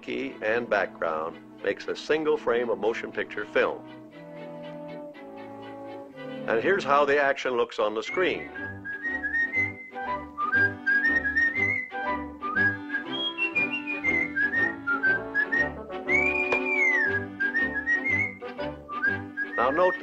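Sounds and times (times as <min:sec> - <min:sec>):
light orchestral accompaniment: 0:00.0 - 0:20.0
whistled tune: 0:08.0 - 0:20.0.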